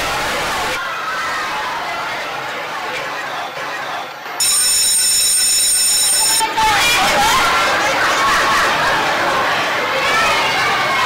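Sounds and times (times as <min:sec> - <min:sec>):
electric bell ringing: 0:04.4 - 0:06.4.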